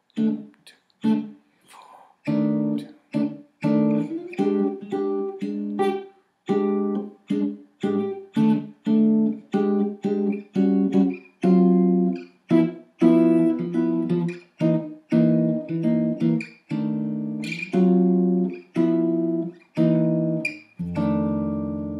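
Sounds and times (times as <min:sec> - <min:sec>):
jazz guitar chord stabs: 0:02.3 - 0:21.9.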